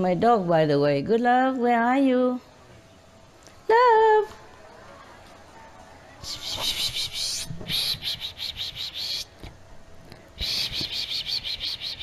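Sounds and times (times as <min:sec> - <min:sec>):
high-pitched pulsing animal calls: 0:06.2 - 0:09.3, 0:10.4 - 0:12.0.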